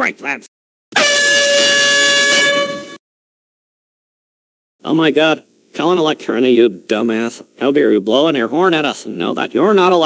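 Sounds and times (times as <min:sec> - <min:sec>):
air horn blast: 0:00.9 - 0:03.0.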